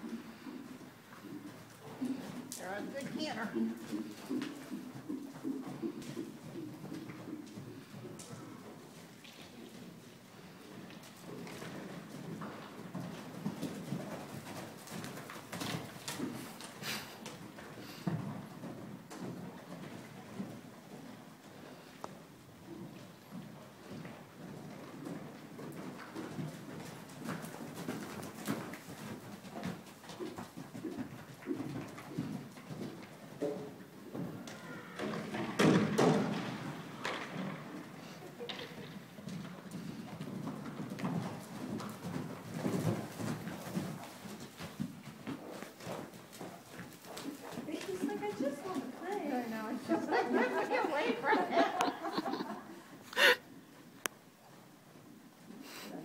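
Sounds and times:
horse hoof beats and thuds: 0:01.2 - 0:10.2, 0:10.8 - 0:21.2, 0:22.0 - 0:49.4.

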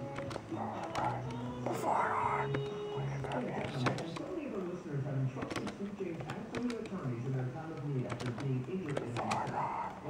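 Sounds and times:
voice on radio broadcast: 0:08.8 - 0:10.0.

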